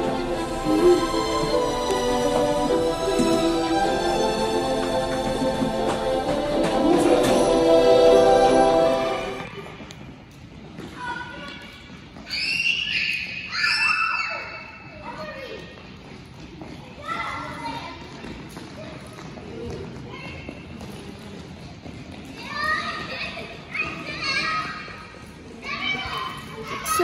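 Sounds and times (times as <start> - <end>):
children chattering and calling out: 23.0 - 27.0.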